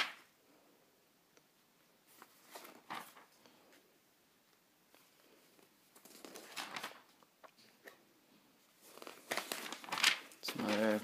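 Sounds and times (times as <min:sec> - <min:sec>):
paper pages turning: 0:02.1 - 0:03.4, 0:05.0 - 0:08.0, 0:08.8 - 0:11.0.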